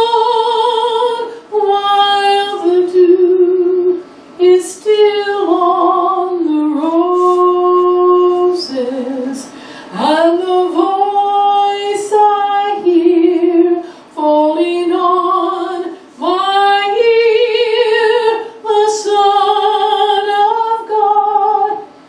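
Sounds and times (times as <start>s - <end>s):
woman singing a hymn: 0.0s - 21.9s.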